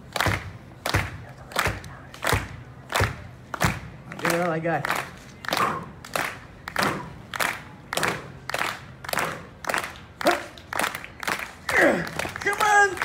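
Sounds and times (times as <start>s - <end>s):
crowd clapping in rhythm: 0.0s - 13.0s.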